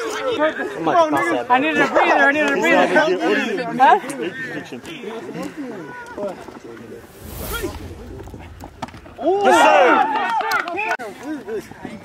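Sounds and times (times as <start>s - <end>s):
wind rumble on microphone: 7.0s - 9.8s.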